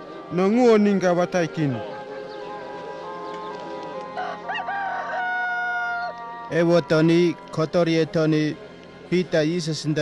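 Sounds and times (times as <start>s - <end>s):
soft background music: 0.0s - 10.0s
rooster crowing: 4.1s - 6.4s.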